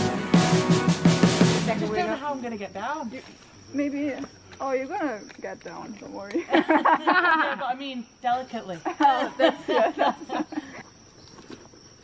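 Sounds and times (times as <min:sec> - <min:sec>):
high insect drone: 0:00.0 - 0:12.0
people talking and exclaiming: 0:01.3 - 0:02.7.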